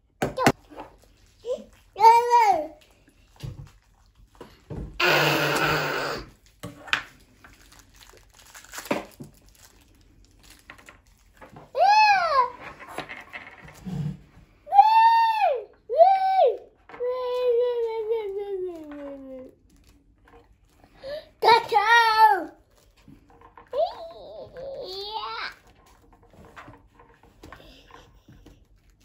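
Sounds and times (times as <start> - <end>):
young child squealing: 14.7 - 16.6.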